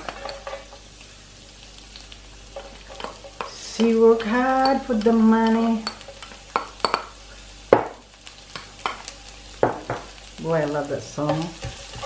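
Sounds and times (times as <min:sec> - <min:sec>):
faint sizzle: 0:00.0 - 0:12.0
spatula scraping frying pan: 0:11.2 - 0:12.0.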